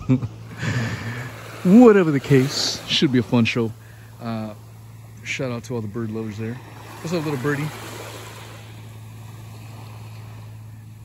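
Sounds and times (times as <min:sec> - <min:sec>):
steady low hum: 0:00.0 - 0:11.0
small waves lapping on sand: 0:00.3 - 0:11.0.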